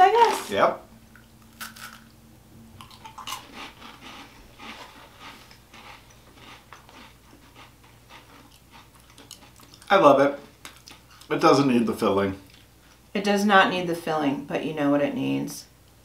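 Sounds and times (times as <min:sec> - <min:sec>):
crunching and chewing wafer rolls: 0:00.1 - 0:02.2, 0:02.8 - 0:11.3.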